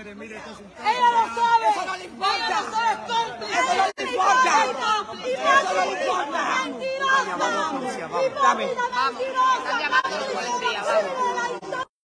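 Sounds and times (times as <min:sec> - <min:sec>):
people talking at once: 0:00.0 - 0:11.9.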